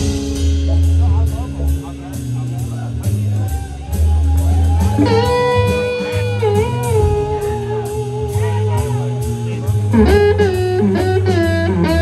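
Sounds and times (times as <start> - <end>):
bass guitar: 0.0 - 12.0
drums: 0.0 - 12.0.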